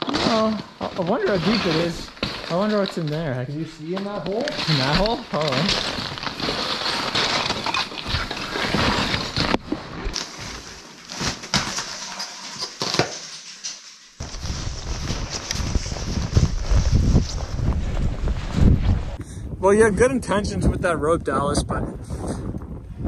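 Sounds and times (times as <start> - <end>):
clothing rustle: 0.0 - 19.2
boots crunching on ice and snow: 0.3 - 11.3.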